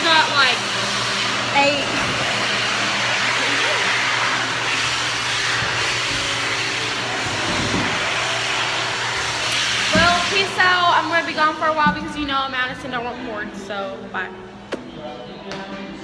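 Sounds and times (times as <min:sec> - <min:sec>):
electric hand dryer blowing: 0:00.0 - 0:14.1.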